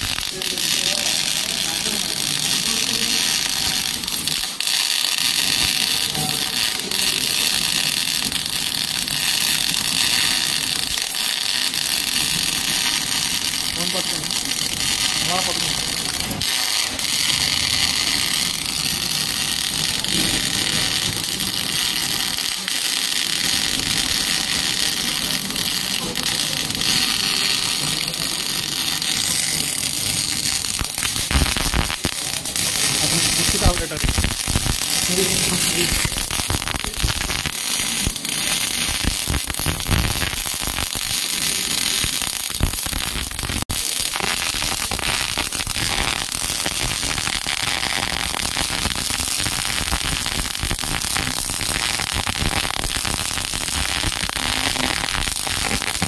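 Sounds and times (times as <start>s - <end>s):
welding arc crackling hiss: 0.0s - 56.0s.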